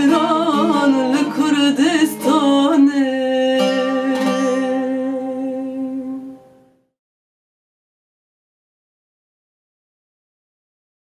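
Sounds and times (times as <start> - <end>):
person singing: 0.0 - 6.7
plucked strings: 0.0 - 6.8.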